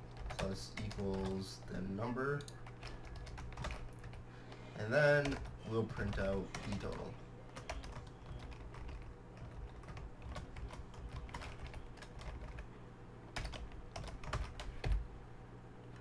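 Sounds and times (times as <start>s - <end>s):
computer keyboard typing: 0.1s - 1.4s, 2.3s - 4.2s, 5.1s - 12.7s, 13.4s - 15.0s.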